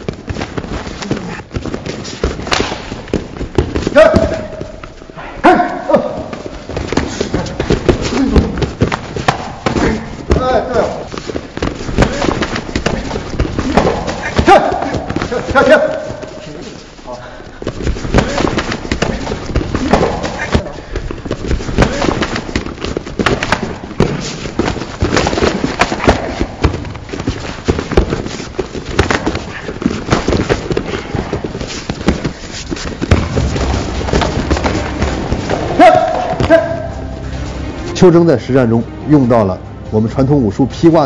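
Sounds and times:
strikes on padded sparring gear: 0.0s - 5.0s, 6.6s - 16.3s, 17.6s - 36.9s
thuds and scuffs on mat: 0.0s - 5.1s, 6.2s - 16.4s, 17.6s - 36.8s
person shouting: 14.4s - 16.1s, 35.7s - 37.0s.

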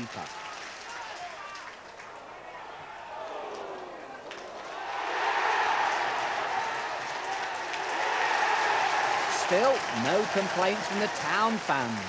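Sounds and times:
crowd cheering: 0.0s - 12.0s
stadium crowd murmur: 0.0s - 12.0s.

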